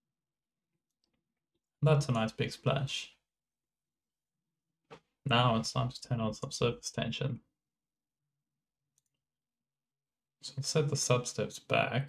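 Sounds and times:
person speaking: 5.3s - 7.2s.

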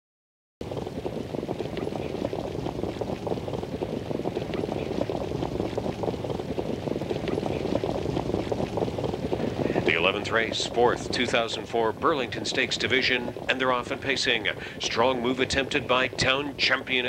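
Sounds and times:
low rumble: 0.6s - 17.0s
wind on microphone: 0.6s - 17.0s.

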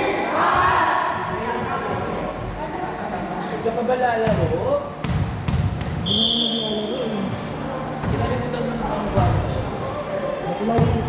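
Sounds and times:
volleyball bouncing on gym floor: 4.2s - 6.1s, 10.7s - 11.0s
players' voices: 6.0s - 11.0s.

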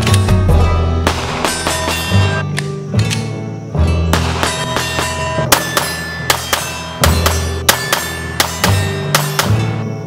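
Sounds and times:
guitar music: 0.0s - 10.0s
pistol shots: 1.0s - 2.6s, 4.1s - 9.6s.

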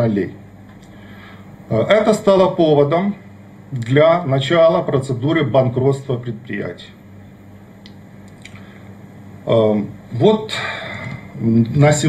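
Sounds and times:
low electrical hum: 0.0s - 12.0s
faint small clicks: 7.8s - 8.6s.

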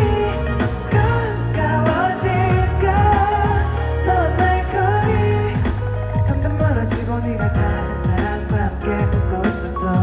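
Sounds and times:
band with bass guitar and drums: 0.0s - 10.0s
man singing: 0.0s - 10.0s.

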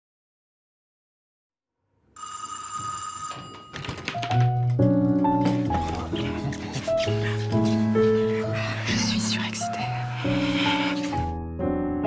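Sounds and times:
bell-like telephone ring: 2.2s - 4.2s.

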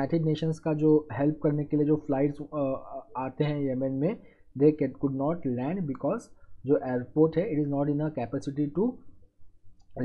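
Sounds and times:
man lecturing: 0.0s - 9.1s.

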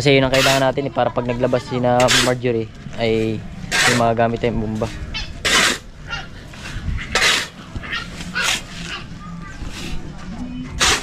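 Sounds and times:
shovel scraping sand: 0.2s - 0.8s, 1.6s - 5.9s, 6.5s - 10.0s, 10.7s - 11.0s.

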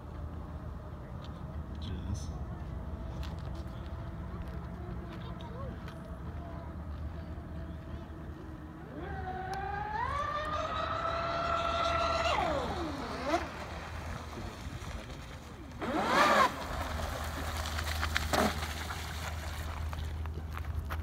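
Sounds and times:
electric motors whining: 7.2s - 14.2s.

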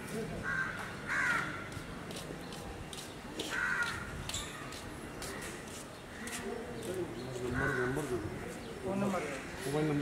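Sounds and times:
faint outdoor background noise: 0.0s - 10.0s
crow cawing: 0.4s - 1.7s, 3.4s - 4.2s, 7.5s - 10.0s.

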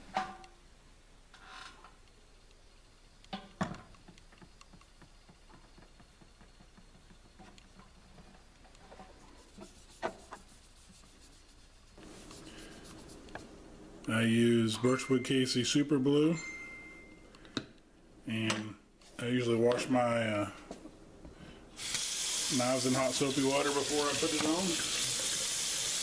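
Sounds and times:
cloth rubbing wax on metal: 7.3s - 13.5s.

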